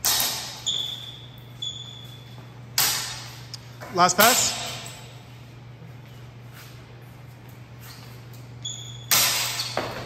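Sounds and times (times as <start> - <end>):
steady low hum: 0.0 - 10.0
steel swords clashing: 2.8 - 3.4, 4.1 - 5.2, 8.8 - 10.0.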